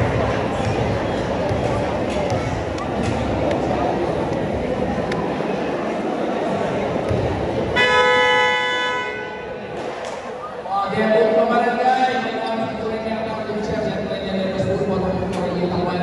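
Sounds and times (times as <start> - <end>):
crowd chatter: 0.0 - 16.0
basketball game buzzer: 7.8 - 9.5.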